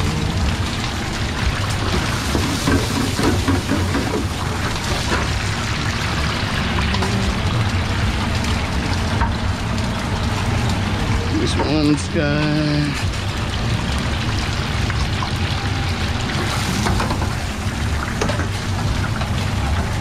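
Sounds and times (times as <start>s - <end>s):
hot oil sizzling in a deep fryer: 0.0s - 20.0s.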